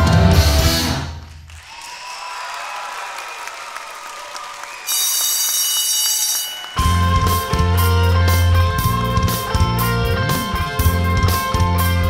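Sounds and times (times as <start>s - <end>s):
rock music with electric guitar: 0.0s - 1.2s, 6.8s - 12.0s
audience clapping: 1.2s - 11.9s
electric bell ringing: 4.9s - 12.0s.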